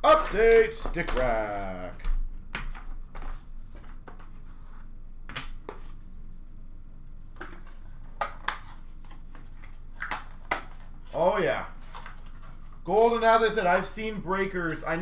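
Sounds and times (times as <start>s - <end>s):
trading cards rustling: 0.0s - 4.8s, 7.4s - 12.8s.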